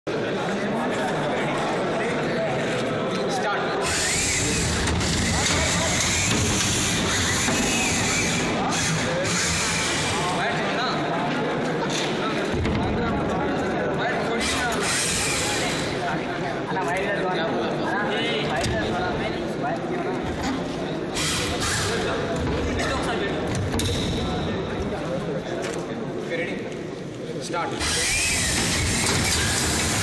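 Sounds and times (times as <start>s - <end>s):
crowd chatter: 0.0s - 30.0s
electric motors whirring: 3.8s - 10.4s, 14.4s - 16.0s, 27.8s - 30.0s.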